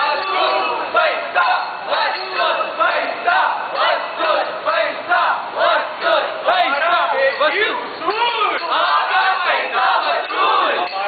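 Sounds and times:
group chanting slogan: 0:00.0 - 0:07.1, 0:08.7 - 0:11.0.

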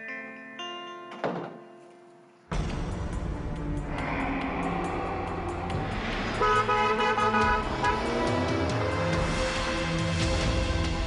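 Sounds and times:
background music: 0:00.0 - 0:11.0
car horn honking: 0:06.4 - 0:08.6.

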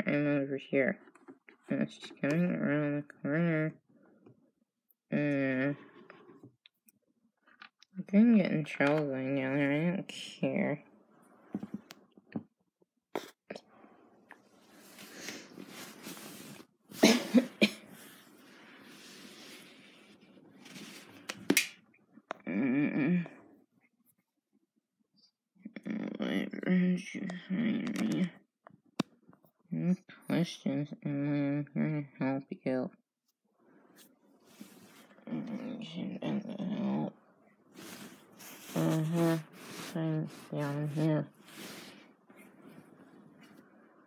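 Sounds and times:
person coughing: 0:17.0 - 0:18.0.

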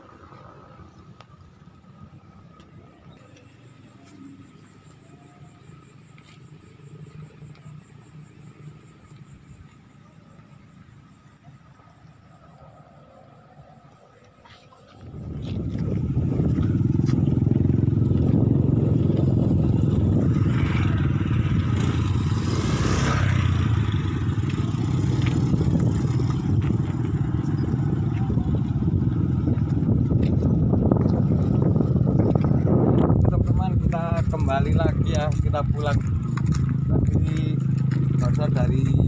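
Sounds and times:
wind buffeting microphone: 0:15.0 - 0:39.0.

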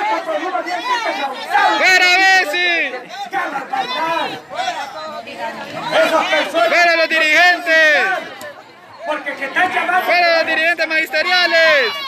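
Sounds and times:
man speaking loudly into microphone: 0:00.0 - 0:05.2, 0:05.8 - 0:08.3, 0:09.0 - 0:12.0.

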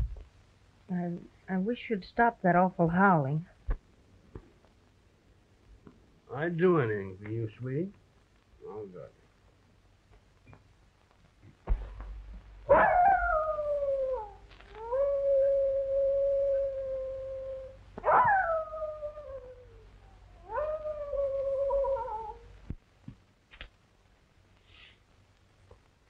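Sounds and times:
dog howling: 0:12.7 - 0:22.5.

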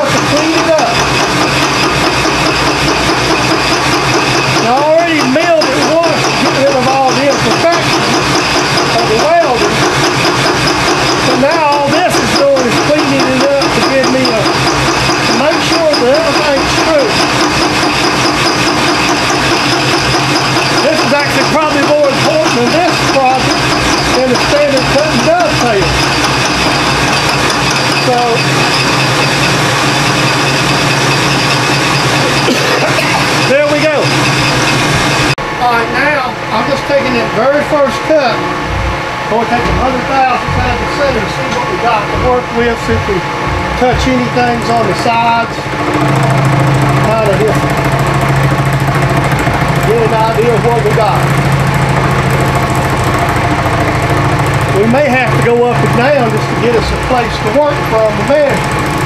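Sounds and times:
milling machine cutting metal: 0:00.0 - 0:59.0.

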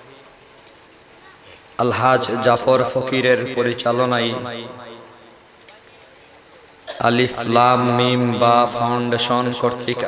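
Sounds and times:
faint hall noise: 0:00.0 - 0:10.0
man chanting amplified: 0:01.8 - 0:05.4, 0:06.9 - 0:10.0.

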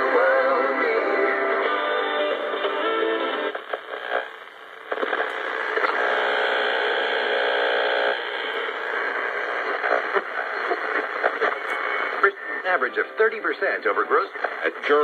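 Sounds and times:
snatches of radio broadcasts: 0:00.0 - 0:15.0
radio static and hiss: 0:01.5 - 0:15.0.

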